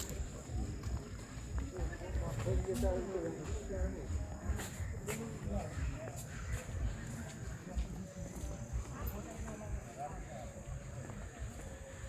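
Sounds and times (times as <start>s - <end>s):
footsteps on stone path: 0.0s - 12.0s.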